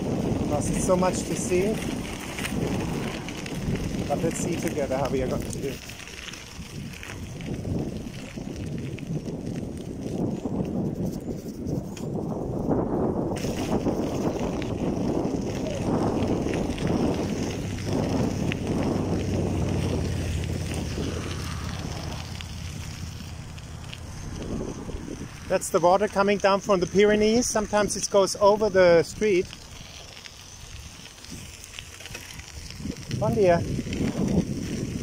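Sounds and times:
bicycle tyres crunching gravel: 0.0 - 35.0
wind buffeting microphone: 0.0 - 35.0.

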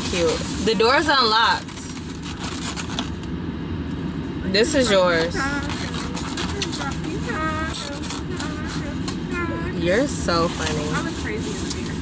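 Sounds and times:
foam container crinkling: 0.0 - 3.3, 5.1 - 12.0
person's voice: 4.6 - 12.0
car cabin hum: 5.0 - 12.0.

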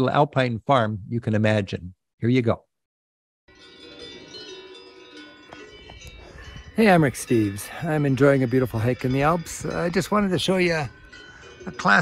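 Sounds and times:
cowbells ringing: 3.5 - 12.0.

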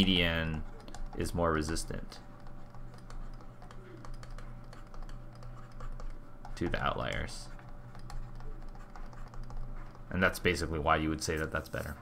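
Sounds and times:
faint electrical hum: 0.0 - 12.0
stylus tapping on tablet: 2.4 - 10.1.

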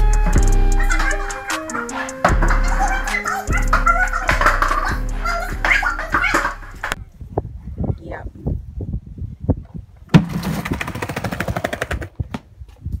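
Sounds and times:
low rumbling: 0.0 - 9.3.

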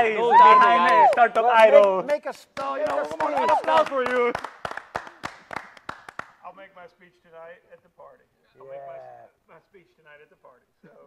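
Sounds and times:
people clapping: 0.3 - 6.5.

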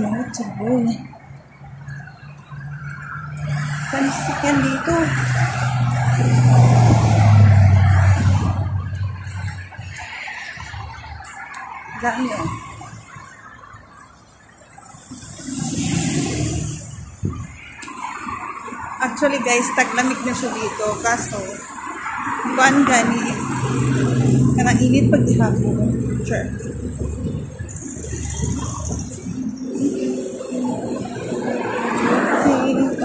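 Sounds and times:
vehicle passing by: 0.0 - 13.2, 15.1 - 33.0
road traffic: 0.0 - 33.0.

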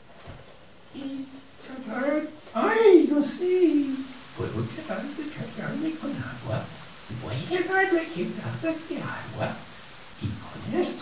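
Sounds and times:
person talking: 1.0 - 11.0
rain falling: 2.5 - 11.0.

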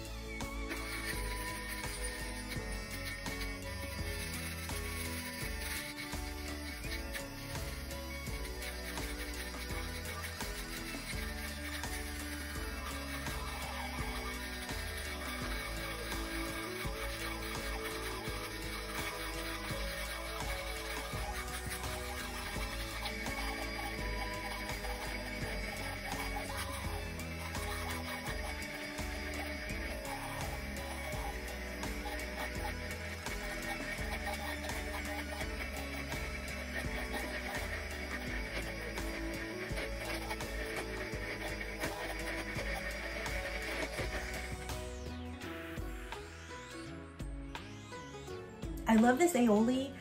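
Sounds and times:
background music: 0.0 - 50.0.

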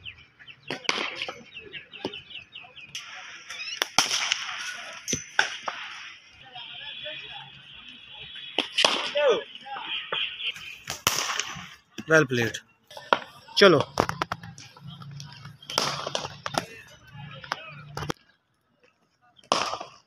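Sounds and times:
birds chirping: 0.0 - 19.6
cricket bat striking ball: 15.4 - 18.1.

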